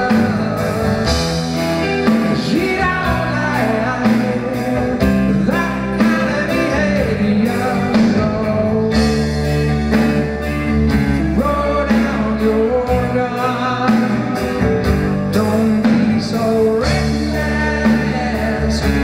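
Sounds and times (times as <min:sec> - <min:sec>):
man singing: 0:00.0 - 0:19.0.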